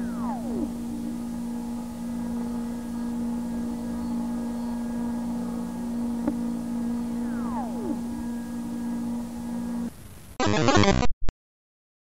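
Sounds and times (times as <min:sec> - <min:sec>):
constant hiss: 0:00.0 - 0:10.6
low hum with overtones: 0:00.0 - 0:10.8.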